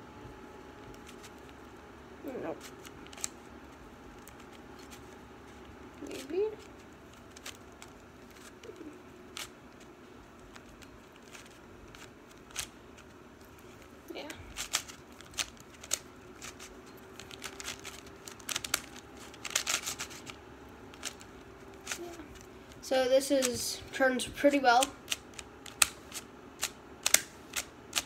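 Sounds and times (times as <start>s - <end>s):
puzzle cube clicking: 14.5s - 22.2s, 24.8s - 28.0s.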